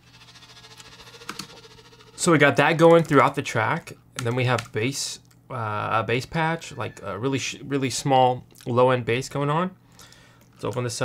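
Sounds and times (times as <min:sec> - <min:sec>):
fast tremolo string pulse: 0:00.0 - 0:02.6.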